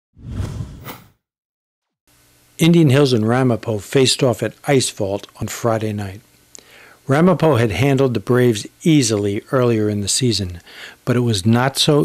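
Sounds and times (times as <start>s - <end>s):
whoosh sound effect: 0.2s - 1.2s.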